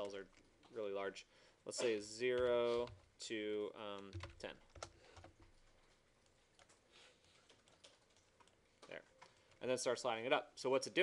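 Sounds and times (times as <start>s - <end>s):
computer keyboard clicks: 6.5s - 9.6s.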